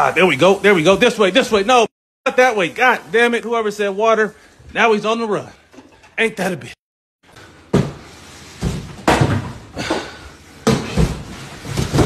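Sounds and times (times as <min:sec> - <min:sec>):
boxes scraping on floor: 0:07.7 - 0:09.7, 0:10.5 - 0:12.0.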